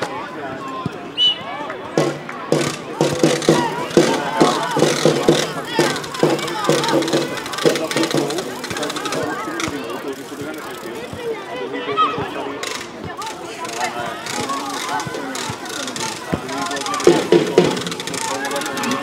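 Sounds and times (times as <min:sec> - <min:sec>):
people calling out: 0:01.2 - 0:10.0, 0:13.1 - 0:19.0
short knocks: 0:02.0 - 0:09.2.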